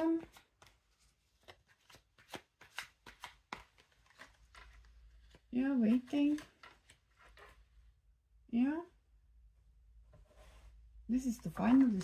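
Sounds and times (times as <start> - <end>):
cards being shuffled: 0.0 - 7.6.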